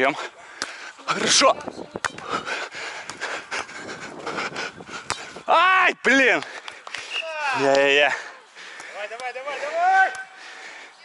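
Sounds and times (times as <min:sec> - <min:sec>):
person panting: 0:02.1 - 0:05.4, 0:08.0 - 0:11.0
person shouting: 0:09.6 - 0:10.2.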